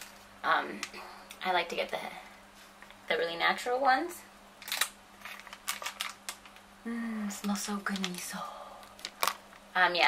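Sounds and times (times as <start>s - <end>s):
plastic lid crinkling open: 4.6s - 6.7s, 7.9s - 9.7s.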